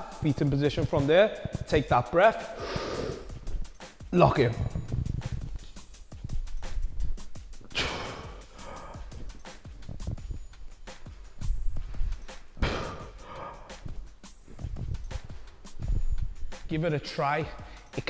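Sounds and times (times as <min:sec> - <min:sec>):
man breathing forcefully: 0:02.4 - 0:03.9, 0:04.7 - 0:16.6, 0:17.6 - 0:18.0.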